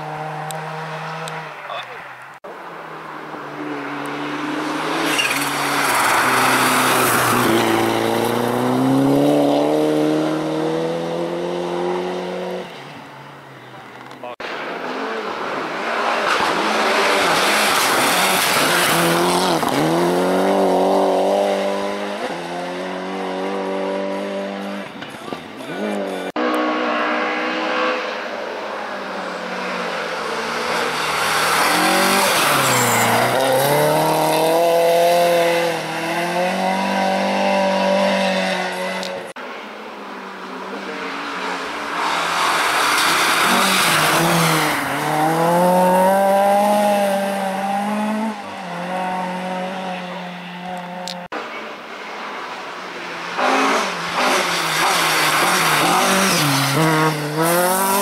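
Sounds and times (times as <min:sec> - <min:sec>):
rally car engines revving: 0:00.0 - 0:02.0, 0:02.8 - 0:12.8, 0:13.8 - 0:58.0.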